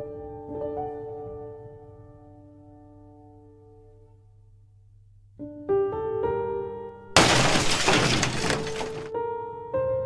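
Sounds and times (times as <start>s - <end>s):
glass window shattering: 7.2s - 9.1s.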